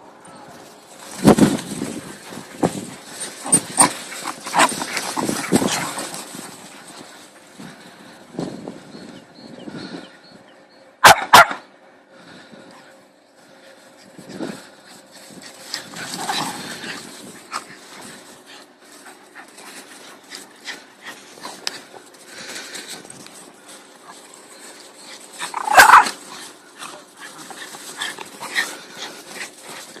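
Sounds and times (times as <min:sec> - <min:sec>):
dog barking: 0:11.0 - 0:11.6.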